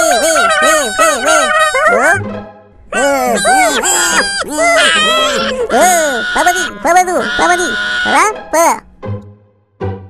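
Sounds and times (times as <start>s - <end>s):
high-pitched cartoon voices babbling: 0.0s - 2.2s, 2.9s - 8.8s.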